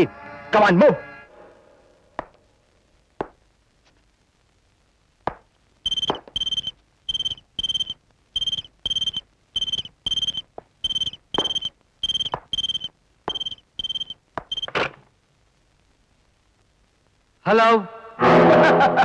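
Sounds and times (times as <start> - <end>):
telephone ringing: 5.9 - 14.9.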